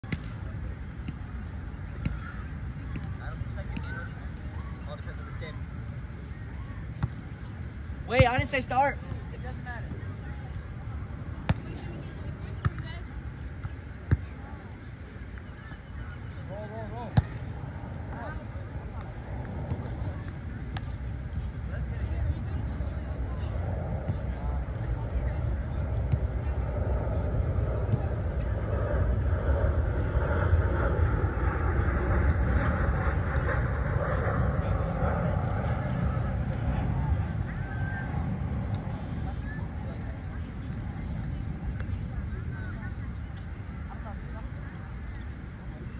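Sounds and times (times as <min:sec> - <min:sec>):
steady low rumble: 0:00.0 - 0:15.4, 0:16.5 - 0:45.9.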